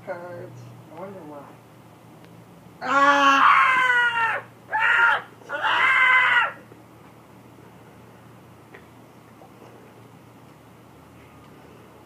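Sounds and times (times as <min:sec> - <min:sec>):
boy yelling drawn-out cries: 0:02.8 - 0:06.6.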